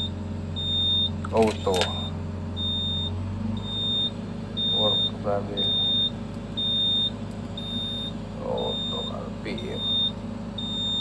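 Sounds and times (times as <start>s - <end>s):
warning buzzer beeping: 0.0s - 1.2s, 1.8s - 11.0s
engine humming: 0.0s - 11.0s.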